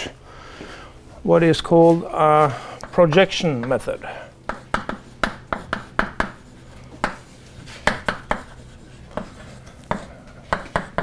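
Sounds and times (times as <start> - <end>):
chalk tapping on blackboard: 4.4 - 11.0
chalk scraping on blackboard: 4.5 - 11.0.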